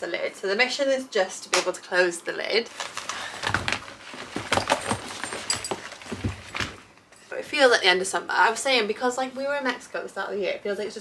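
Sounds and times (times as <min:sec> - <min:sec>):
rustling against wicker basket: 0:02.7 - 0:06.9
shoes knocking together: 0:03.4 - 0:06.8.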